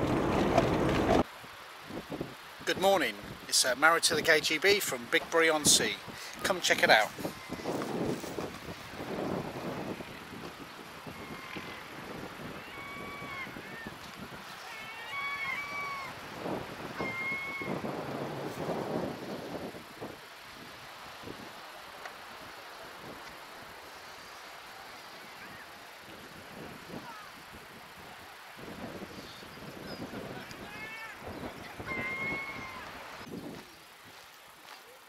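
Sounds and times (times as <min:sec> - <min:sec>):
outdoor background noise: 0:00.0 - 0:35.0
gulls calling: 0:12.5 - 0:17.9, 0:30.4 - 0:33.3.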